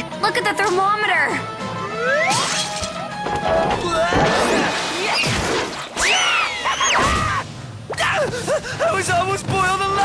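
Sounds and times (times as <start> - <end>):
cartoon music: 1.8 - 4.1.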